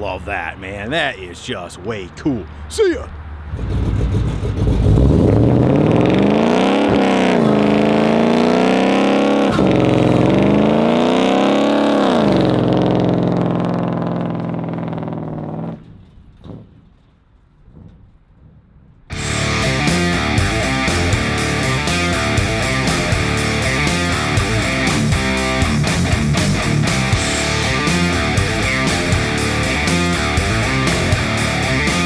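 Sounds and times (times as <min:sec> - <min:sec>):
engine revving hard: 0:03.4 - 0:15.8, 0:19.1 - 0:32.0
rock music with electric guitar: 0:19.1 - 0:32.0.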